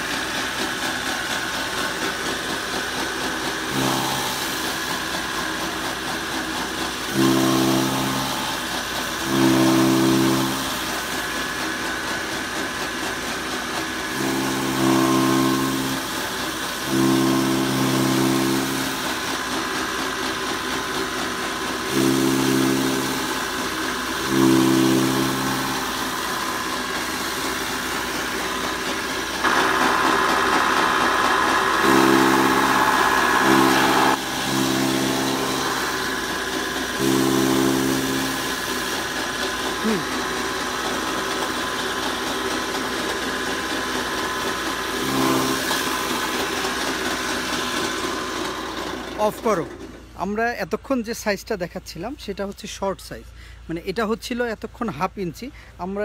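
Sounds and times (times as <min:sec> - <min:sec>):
straw chopper whirring: 0:00.0 - 0:49.9
louder rushing sound: 0:29.4 - 0:37.2.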